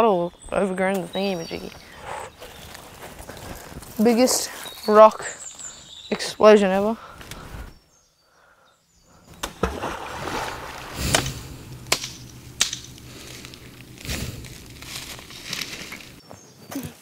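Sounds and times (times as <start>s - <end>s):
rock splashing into water: 9.3s - 13.0s
sharp knocks: 9.3s - 15.3s
rustling: 9.3s - 16.2s.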